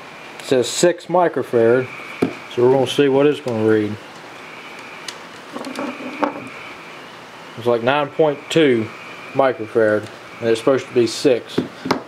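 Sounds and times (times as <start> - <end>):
steady low hiss: 0.0 - 12.0
small taps and scrapes: 5.5 - 6.5.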